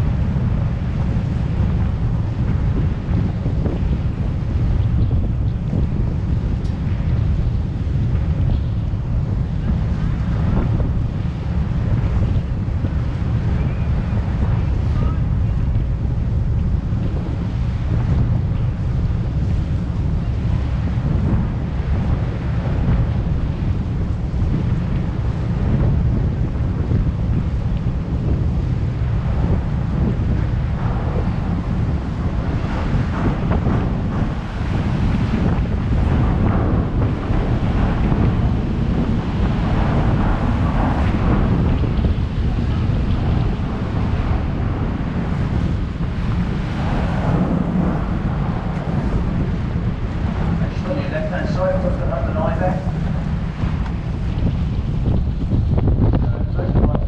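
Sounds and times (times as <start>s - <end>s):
heavy wind buffeting microphone: 0.0s - 57.0s
water rushing past hull: 8.8s - 57.0s.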